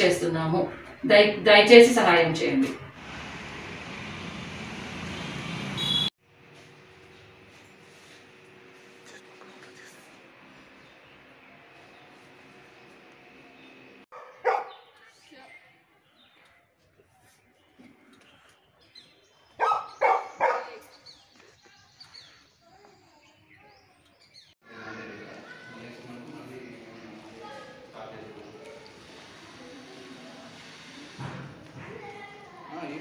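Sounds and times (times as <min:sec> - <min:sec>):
dog barking: 0:14.1 - 0:15.0, 0:19.6 - 0:20.9.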